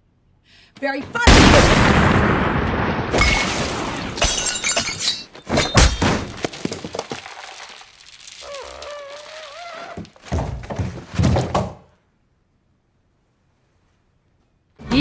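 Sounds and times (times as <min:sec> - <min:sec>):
glass shattering: 0:03.1 - 0:09.6.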